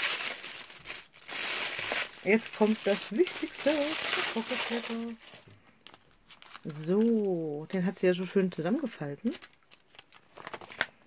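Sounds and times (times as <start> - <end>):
tissue paper crinkling: 0.0 - 7.5.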